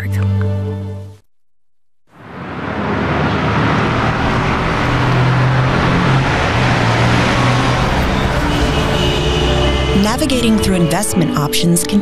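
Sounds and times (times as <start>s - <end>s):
road traffic: 2.1s - 12.0s
musical tones: 3.5s - 12.0s.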